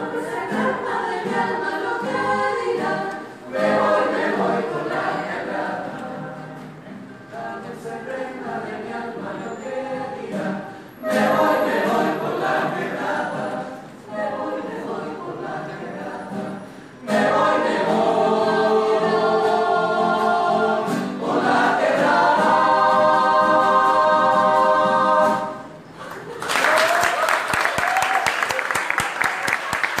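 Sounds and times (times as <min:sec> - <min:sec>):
choir singing a cappella: 0:00.0 - 0:26.0
audience applauding: 0:26.0 - 0:30.0.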